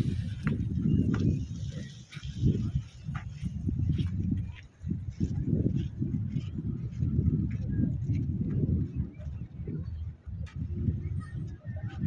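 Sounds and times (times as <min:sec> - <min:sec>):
wind buffeting microphone: 0:00.0 - 0:12.0
faint voices of people: 0:06.3 - 0:12.0.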